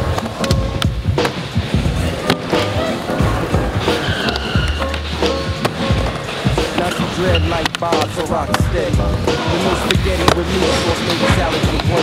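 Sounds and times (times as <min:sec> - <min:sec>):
music with a beat: 0:00.0 - 0:12.0
skateboard clacks: 0:00.0 - 0:12.0
skateboard wheels rolling: 0:00.0 - 0:12.0.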